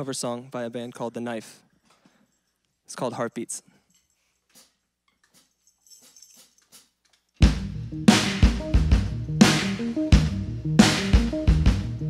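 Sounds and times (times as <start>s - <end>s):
kick drum and bass hit: 7.4s - 12.0s.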